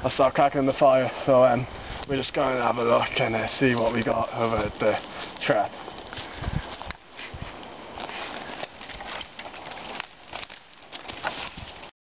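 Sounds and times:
footsteps on twigs and leaves: 0.3s - 11.9s.

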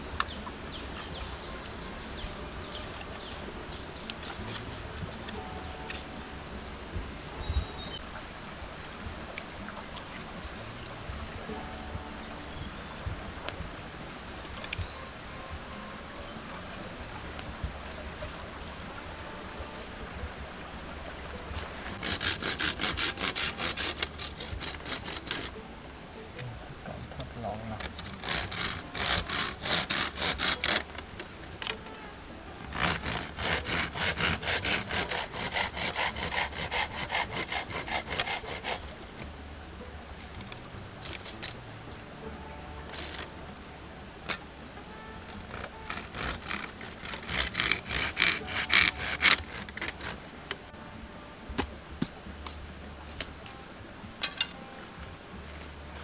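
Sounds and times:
hand saw cutting wood: 3.7s - 6.0s, 21.9s - 25.6s, 27.8s - 31.1s, 32.6s - 39.3s, 41.0s - 41.6s, 42.9s - 43.3s, 45.3s - 50.6s.

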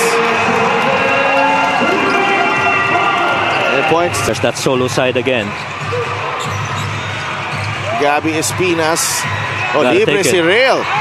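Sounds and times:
crowd murmur in a large hall: 0.0s - 11.0s.

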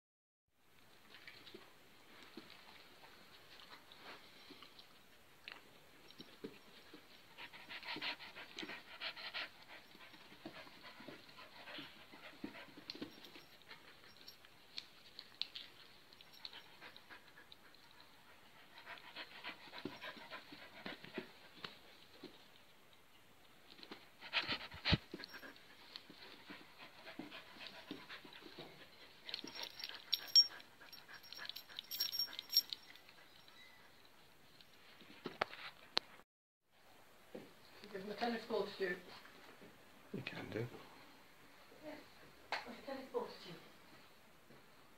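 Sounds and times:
dog panting: 6.5s - 14.4s, 16.2s - 22.1s, 23.9s - 33.4s.

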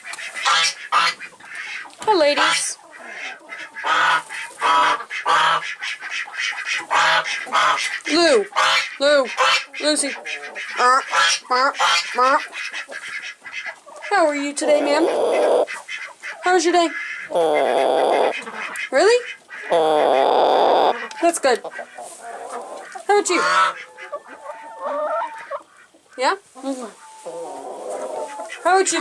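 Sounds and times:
hen clucking: 0.0s - 29.0s
waterfowl honking calls: 0.0s - 29.0s
hen wavering calls: 17.2s - 18.5s.

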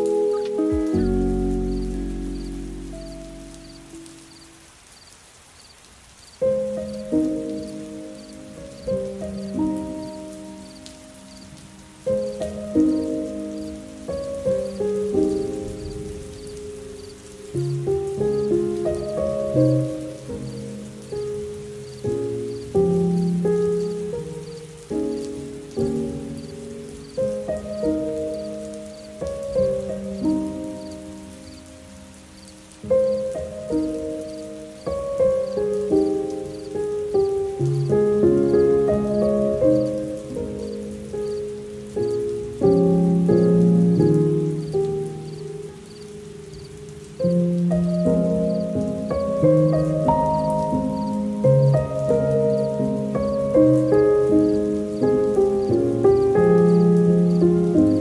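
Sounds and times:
soft solo piano: 0.0s - 4.6s, 6.4s - 58.0s
faint steady hiss: 0.0s - 58.0s.

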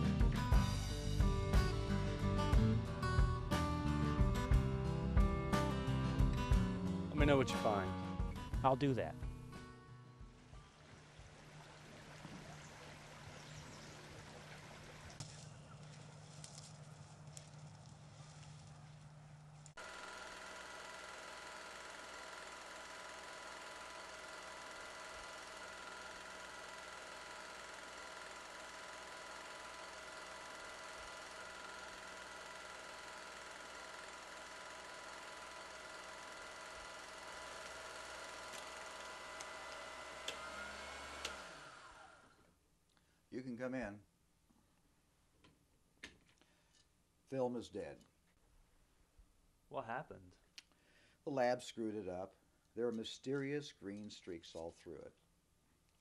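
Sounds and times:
low steady hum: 8.2s - 19.9s
film projector whirring: 19.1s - 42.6s.

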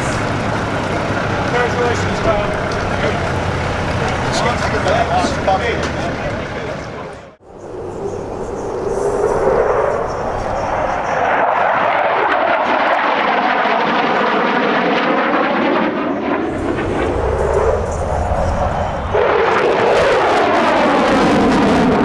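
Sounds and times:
fighter jet engine roar: 0.0s - 22.0s.

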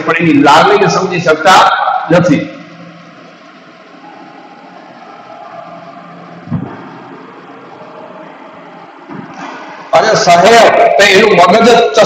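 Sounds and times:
background hum and hiss: 0.0s - 12.0s.

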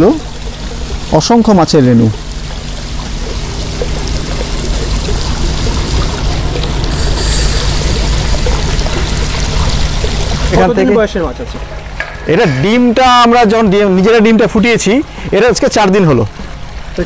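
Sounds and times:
low hum: 0.0s - 15.3s
water pouring into a tank: 0.0s - 17.0s.

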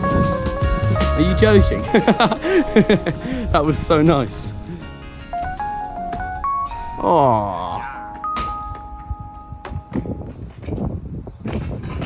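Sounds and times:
held chime-like music notes: 1.3s - 10.0s.

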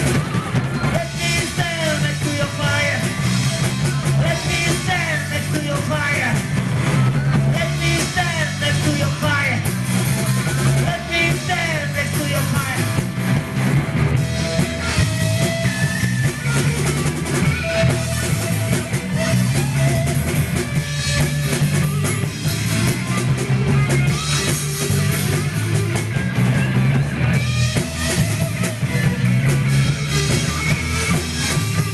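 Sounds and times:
bass guitar: 0.0s - 31.9s
drum kit: 0.0s - 31.9s
electric guitar: 0.0s - 31.9s.

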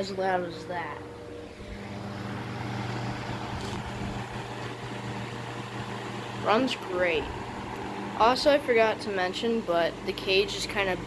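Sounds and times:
electric motor hum: 0.0s - 11.0s.

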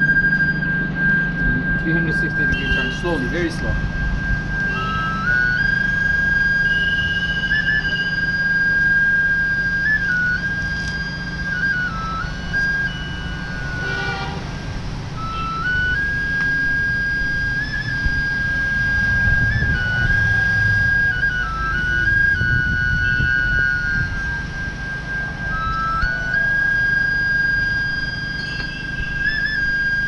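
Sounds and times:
slow flute melody: 0.0s - 30.0s
wind rumble on microphone: 14.4s - 30.0s.

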